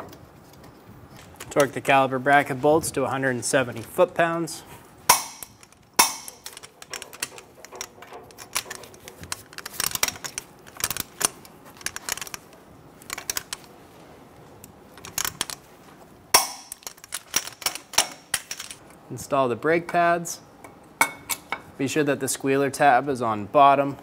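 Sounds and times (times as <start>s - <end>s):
sharp metallic clacks: 5.1s - 8.8s.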